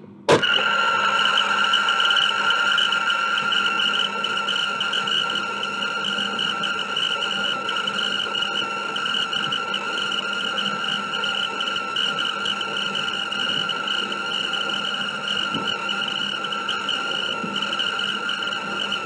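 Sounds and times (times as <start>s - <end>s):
tape rewinder motor whine: 0.3s - 19.0s.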